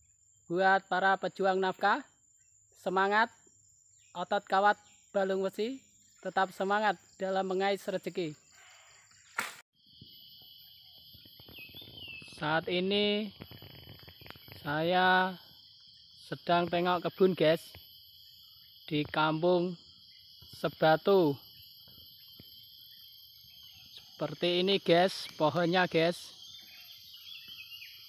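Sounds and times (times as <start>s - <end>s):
insects chirring: 0.0s - 28.0s
brief insect chirp: 8.4s - 12.4s.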